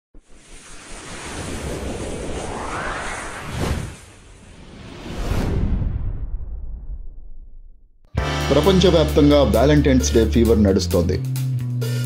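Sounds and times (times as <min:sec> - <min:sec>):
rushing whoosh: 0:00.2 - 0:07.6
low rumble: 0:00.8 - 0:08.1.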